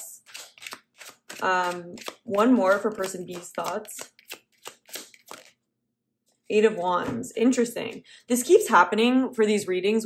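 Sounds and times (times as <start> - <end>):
cards being shuffled: 0.2 - 5.6.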